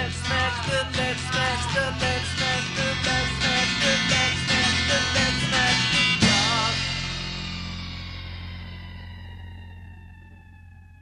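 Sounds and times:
rock chord ringing out: 0.0s - 11.0s.

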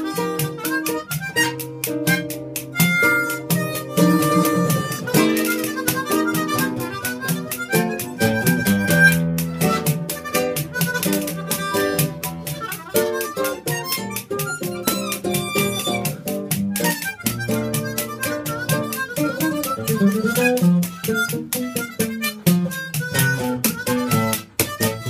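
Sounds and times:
acoustic guitar: 0.0s - 25.0s
hand percussion: 0.0s - 25.0s
harmonicas playing jazz: 0.0s - 25.0s.

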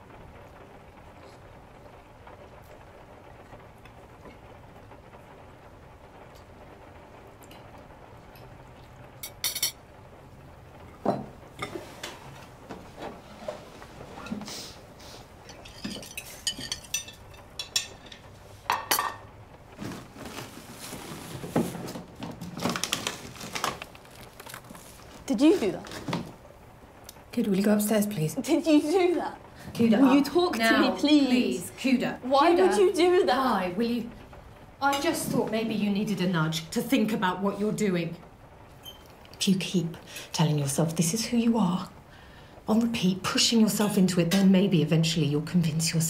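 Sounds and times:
cutlery and dishes clinking: 9.2s - 9.8s, 15.5s - 19.2s.

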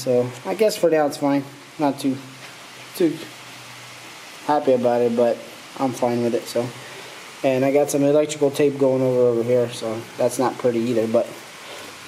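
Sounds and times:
man speaking: 0.0s - 2.3s, 2.9s - 3.4s, 4.4s - 6.8s, 7.4s - 11.4s.

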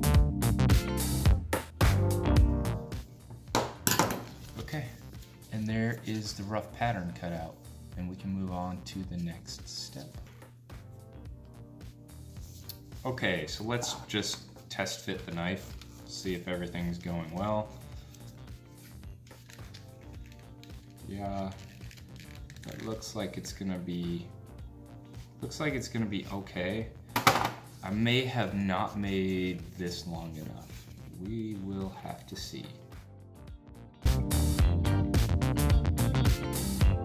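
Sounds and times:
quiet background music: 0.0s - 37.0s
knife set down on wooden table: 3.6s - 4.4s, 27.2s - 27.7s.

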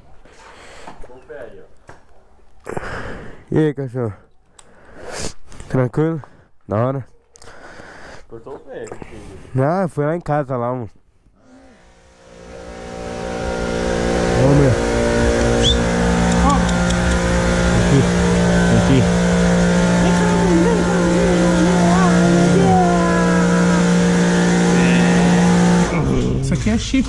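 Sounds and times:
machine motor humming: 11.7s - 26.5s.

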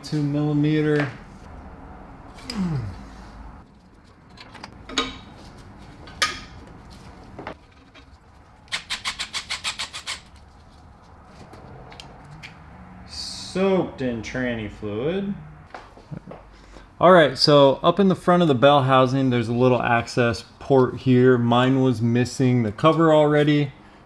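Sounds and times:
ratchet wrench clicking: 8.7s - 10.3s.

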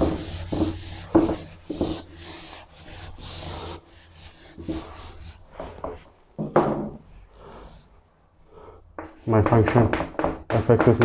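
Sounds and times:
chalkboard eraser rubbing: 0.0s - 6.3s.

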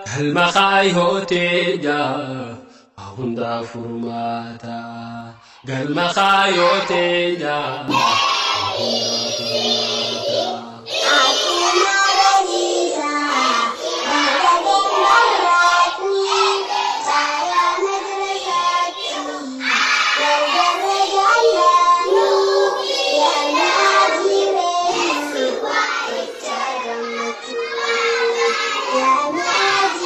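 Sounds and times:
children singing: 5.6s - 30.0s.

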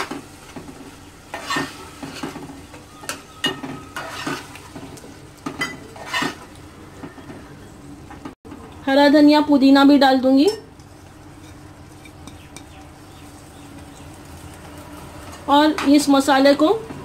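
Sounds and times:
low sizzle of cooking: 0.0s - 17.0s
spoon scraping metal pot: 3.0s - 4.6s, 5.6s - 6.5s, 10.5s - 12.8s.

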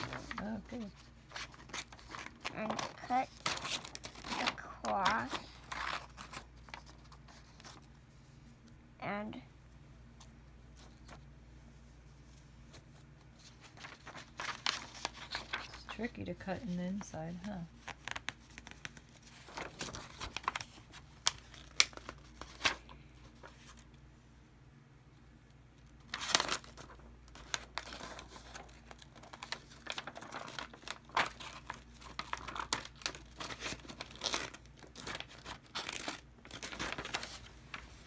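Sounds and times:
paper rustling and crinkling: 0.0s - 8.7s, 10.2s - 11.3s, 12.1s - 24.0s, 25.8s - 38.0s.

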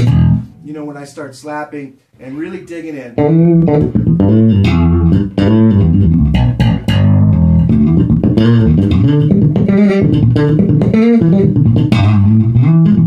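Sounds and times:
slapped electric bass: 0.0s - 0.6s, 3.2s - 13.0s.

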